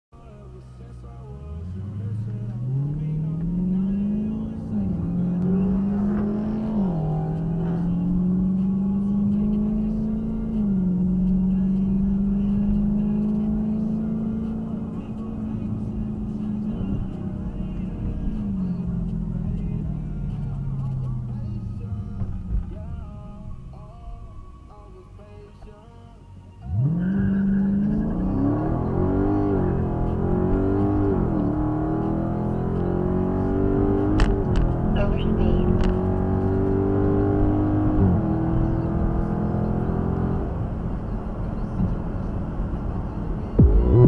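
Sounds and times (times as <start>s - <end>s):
car engine accelerating: 0.2s - 24.4s, 26.6s - 44.0s.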